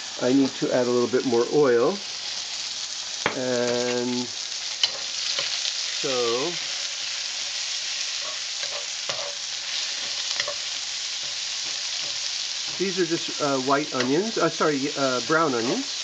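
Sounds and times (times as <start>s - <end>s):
onions sizzling in hot oil: 0.0s - 16.0s
wooden spatula scraping pan: 8.2s - 12.9s.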